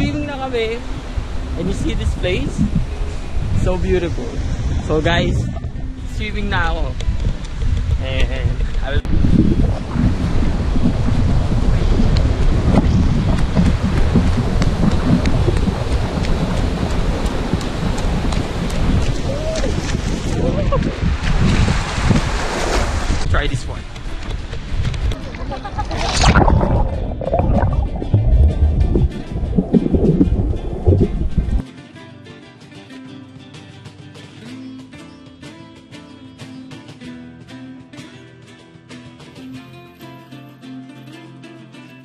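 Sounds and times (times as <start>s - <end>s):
guitar background music: 0.0s - 16.6s, 23.6s - 42.0s
wind buffeting microphone: 0.0s - 31.6s
underwater rumbling and churning: 2.2s - 3.8s, 4.4s - 6.2s, 9.0s - 23.3s, 24.2s - 31.6s.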